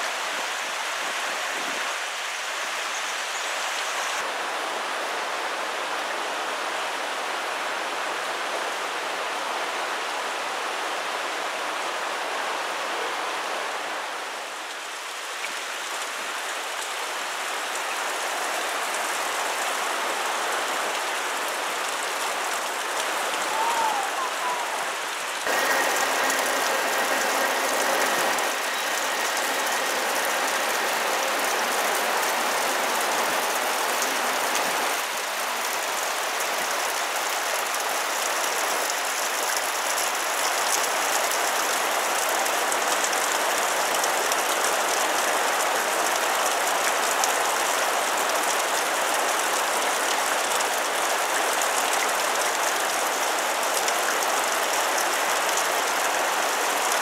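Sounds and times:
water splashing down rock wall: 0:18.2 - 0:57.0.

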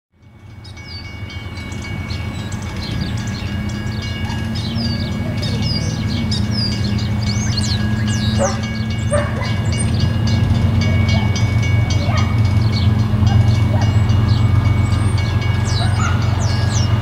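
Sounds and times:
diesel locomotives rumbling: 0:00.2 - 0:17.0
songbirds chirping: 0:00.2 - 0:17.0.

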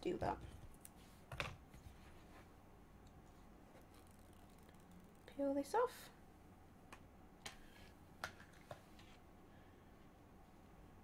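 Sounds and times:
paper wrap peeling ticks: 0:03.8 - 0:05.3.

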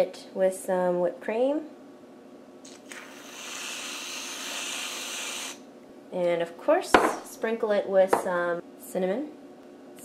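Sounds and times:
aerosol can hissing: 0:02.7 - 0:05.6.

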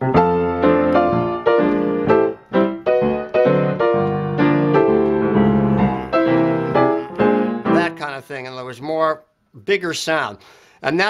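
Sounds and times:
jazz grand piano chords: 0:00.0 - 0:08.2.

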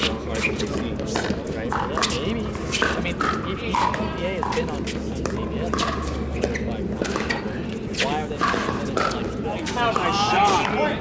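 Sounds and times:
paddles hitting plastic ball: 0:00.0 - 0:07.4, 0:08.0 - 0:10.8.

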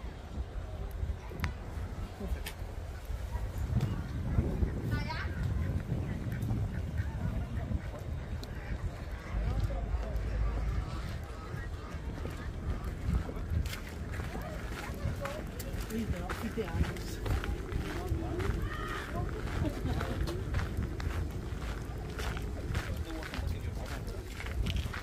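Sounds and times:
low microphone rumble: 0:00.0 - 0:25.0
people chattering: 0:00.0 - 0:25.0
footsteps on gravel: 0:12.0 - 0:25.0.

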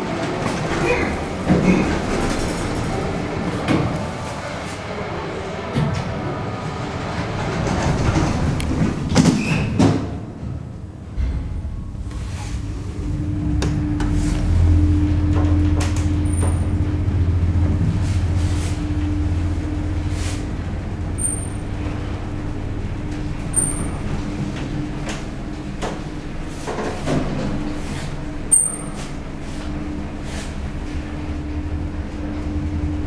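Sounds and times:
elevator mechanical hum: 0:00.0 - 0:33.0.

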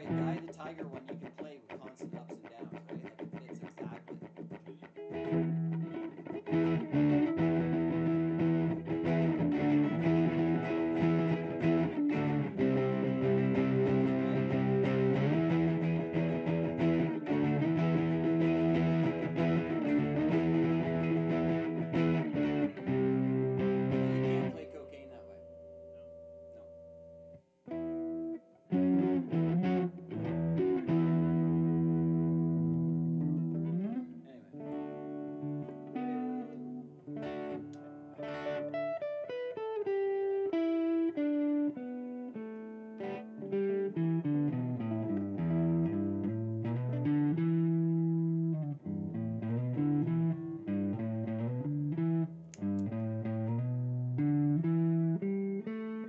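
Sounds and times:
electric guitar chordal riff: 0:00.0 - 0:00.6, 0:02.5 - 0:56.0.

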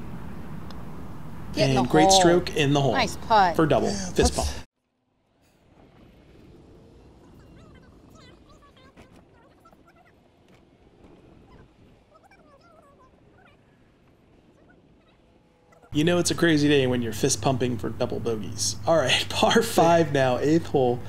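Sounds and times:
golf cart rumble: 0:00.0 - 0:21.0.

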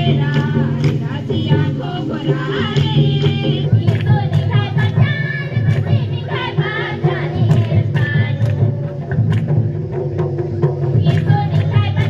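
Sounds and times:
women and children singing: 0:00.0 - 0:09.4, 0:10.8 - 0:12.0
hand drum beat: 0:00.0 - 0:12.0.

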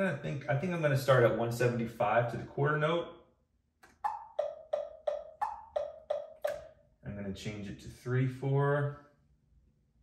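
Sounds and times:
metronome clicking: 0:03.8 - 0:06.7.

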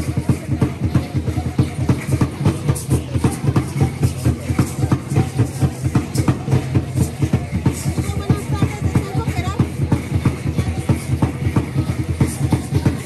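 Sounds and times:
fast even drumming: 0:00.0 - 0:13.0.

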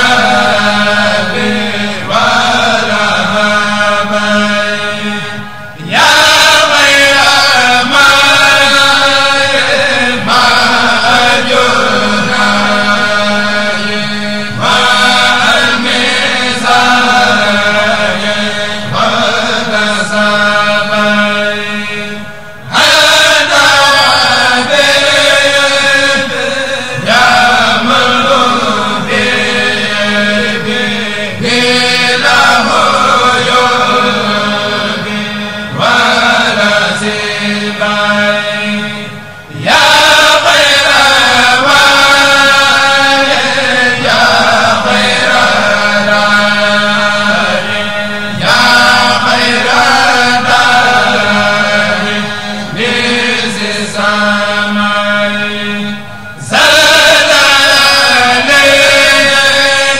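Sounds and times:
group of men chanting: 0:00.0 - 0:59.9.

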